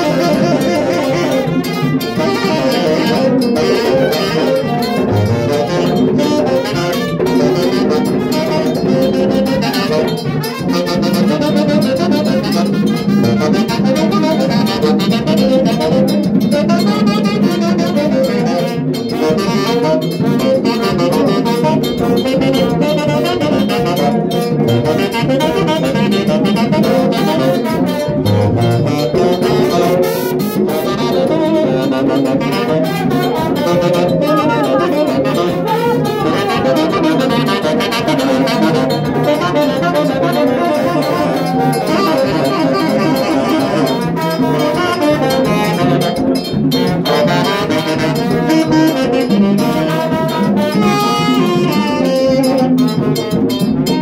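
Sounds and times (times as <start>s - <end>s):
saxophone playing dance music: 0.0s - 54.0s.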